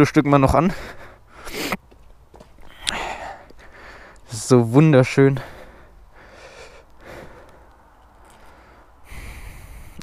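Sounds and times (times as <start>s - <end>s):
breathing close to microphone: 2.7s - 4.3s, 5.4s - 10.0s.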